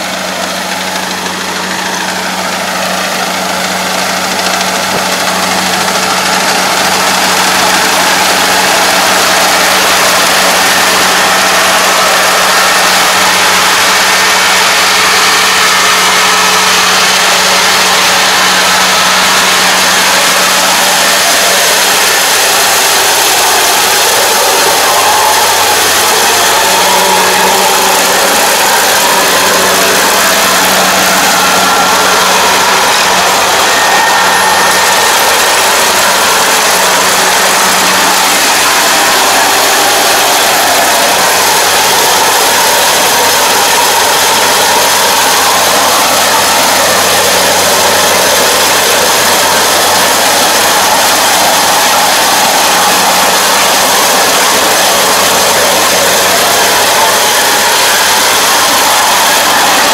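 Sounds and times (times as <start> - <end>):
combine harvester diesel engine drone: 0.0 - 59.9.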